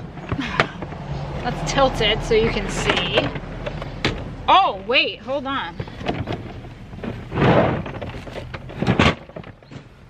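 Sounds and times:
plastic tote being handled: 5.7 - 9.9.

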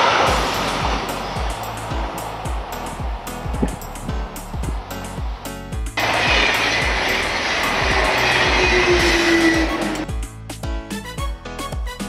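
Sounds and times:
passenger train passing: 0.0 - 10.4
background music with steady beat: 0.2 - 12.0.

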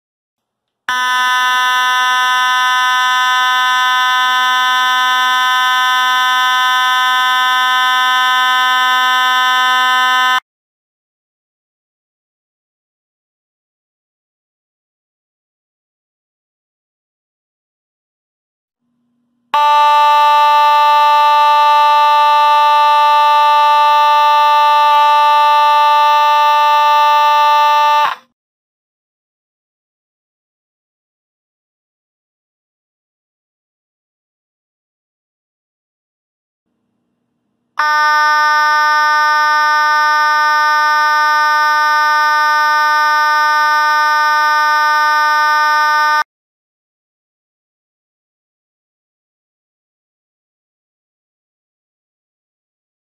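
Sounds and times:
fire alarm horn buzzing: 0.9 - 10.4, 19.5 - 28.3, 37.8 - 46.3.

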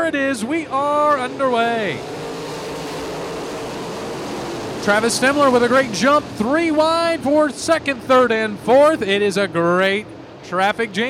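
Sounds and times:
race car engines roaring: 0.0 - 11.0.

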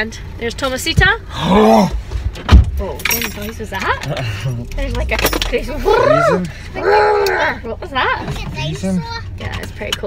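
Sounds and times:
metallic jangle: 2.9 - 5.9.

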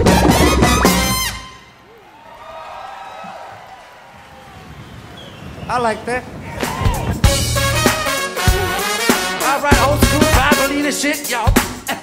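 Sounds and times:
funk band with horns: 0.0 - 1.7, 6.5 - 12.0
crowd cheering and clapping: 0.0 - 8.7.

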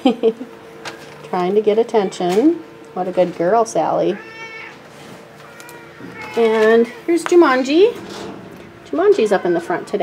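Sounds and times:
cat meowing: 4.2 - 4.8.

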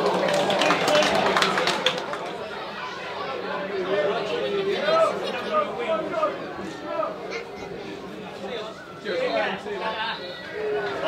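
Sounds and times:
crowd chattering: 0.0 - 11.0
voices calling out: 0.0 - 11.0.

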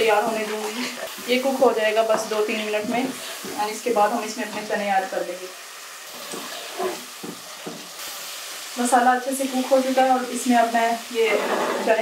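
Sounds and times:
woman talking: 0.0 - 5.5, 8.8 - 12.0
gravy sizzling in a pot: 0.0 - 12.0
spoon scraping pot: 6.2 - 7.1, 11.2 - 12.0.

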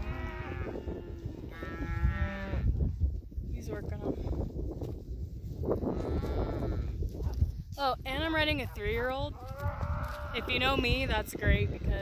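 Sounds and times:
cows mooing: 0.0 - 2.6, 9.4 - 10.8
wind rumbling on microphone: 0.0 - 12.0.

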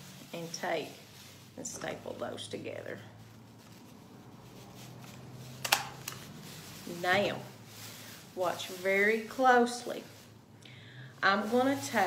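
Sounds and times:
plastic bag rustling: 0.0 - 12.0
stapler clacking: 5.6 - 6.2.

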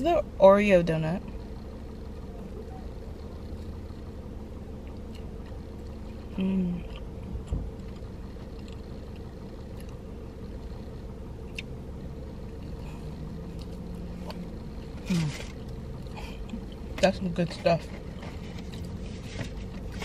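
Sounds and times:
low rumble in car cabin: 0.0 - 20.0.

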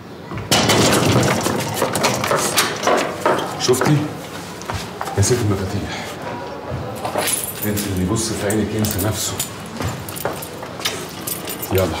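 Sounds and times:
glass door rattling and knocking: 0.5 - 3.7.

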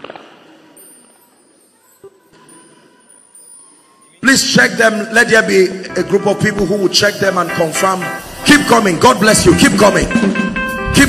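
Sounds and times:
amplified speech echo: 2.1 - 11.0.

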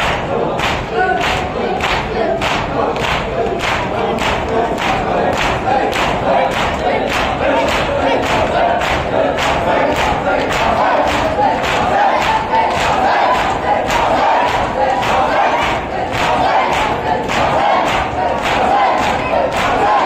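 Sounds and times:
men chanting: 0.0 - 20.0.

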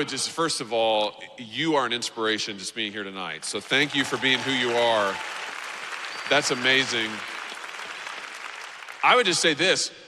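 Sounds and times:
audience applauding: 3.6 - 9.8.

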